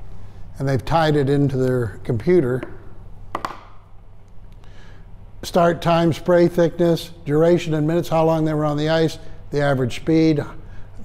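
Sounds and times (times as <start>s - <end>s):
quick taps: 2.6s - 3.8s.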